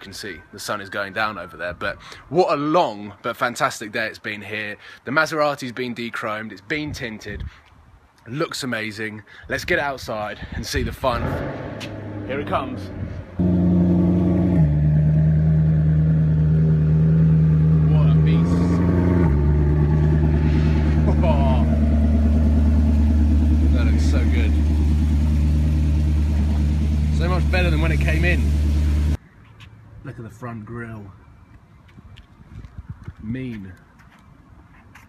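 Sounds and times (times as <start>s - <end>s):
car engine idling loud: 17.7s - 29.2s.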